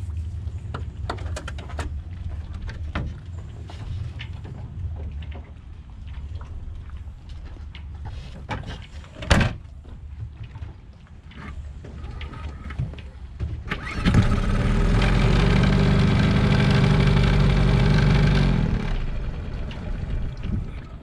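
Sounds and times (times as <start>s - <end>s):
outboard motor pull-starting: 13.6s - 21.0s
outboard motor running: 13.7s - 21.0s.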